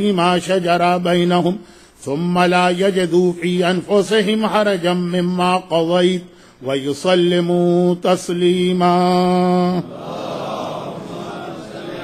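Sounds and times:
man chanting recitation: 0.0s - 12.0s
murmur of many voices: 9.8s - 12.0s.

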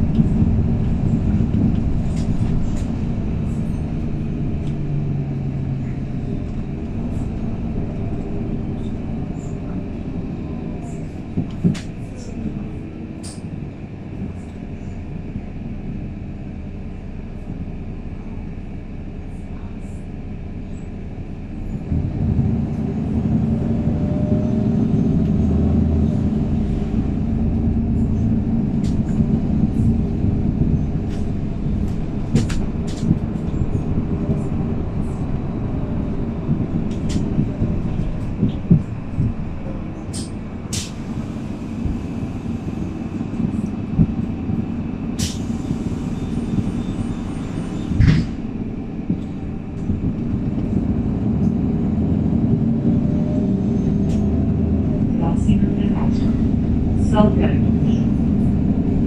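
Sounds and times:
bus engine and road drone: 0.0s - 59.0s
body rattles and clicks: 26.5s - 41.1s, 47.9s - 51.6s.

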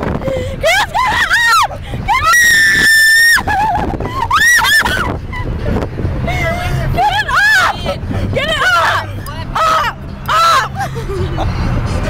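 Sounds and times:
people screaming with laughter: 0.7s - 5.1s, 9.6s - 11.2s
car cabin rumble: 3.3s - 12.0s.

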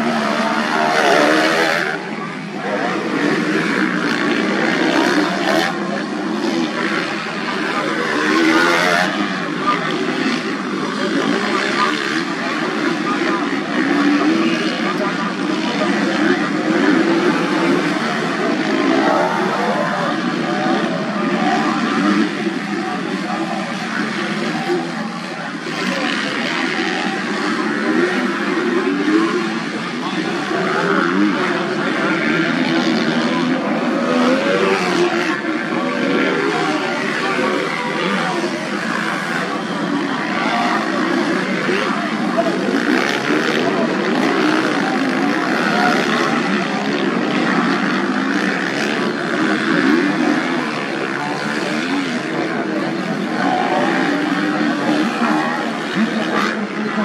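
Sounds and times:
motocross bikes revving: 0.0s - 57.0s.

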